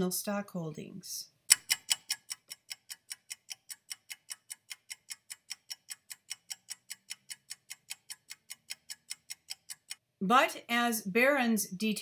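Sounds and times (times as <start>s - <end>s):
clock ticking: 1.5s - 10.0s.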